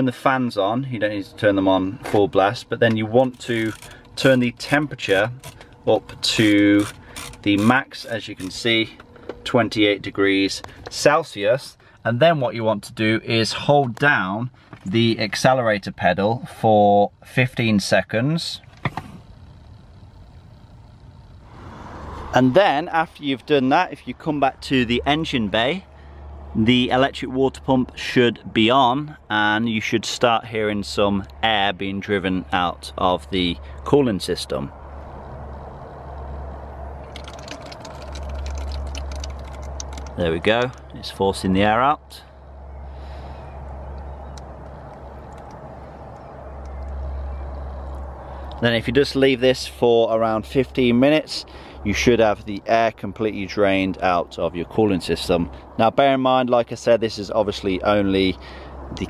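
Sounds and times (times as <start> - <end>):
car blower fan humming: 0.0 - 27.1
faint clicks: 37.0 - 40.9.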